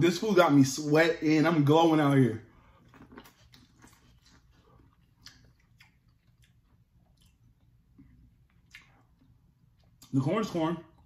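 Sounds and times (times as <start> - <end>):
faint chewing: 2.5 - 10.2.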